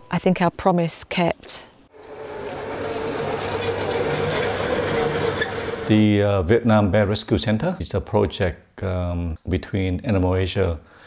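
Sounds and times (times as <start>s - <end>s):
small vehicle motor whining: 1.9s - 6.1s.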